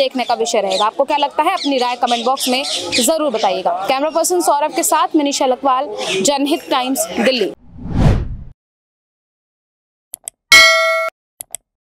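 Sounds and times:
bright bell ding: 0:10.5 - 0:11.1.

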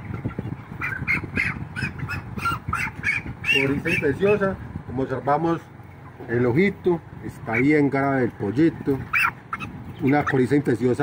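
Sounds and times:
chicken squawking: 0:00.0 - 0:04.9, 0:07.3 - 0:11.0.

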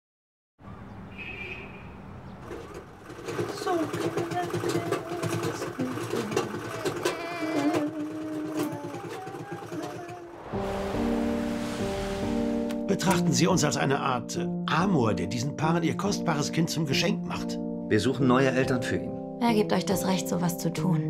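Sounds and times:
baby cooing and babbling: 0:06.7 - 0:10.4.

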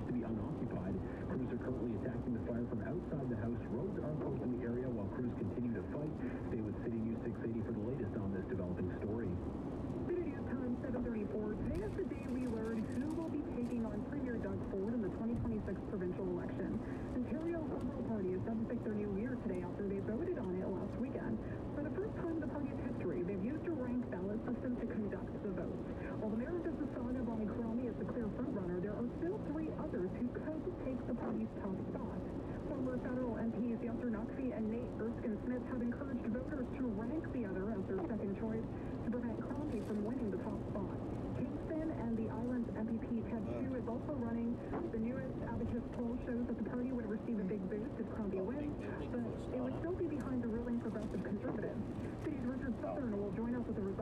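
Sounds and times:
muffled radio voice: 0:00.0 - 0:09.4, 0:10.1 - 0:54.0.

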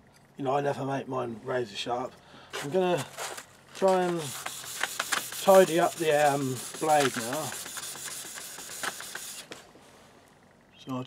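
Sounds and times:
blade rubbing on sandpaper: 0:03.8 - 0:09.6.

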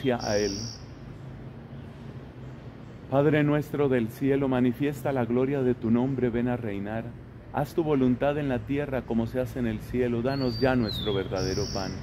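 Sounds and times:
low outdoor rumble: 0:00.0 - 0:12.0
soft outdoor hiss: 0:00.0 - 0:12.0.

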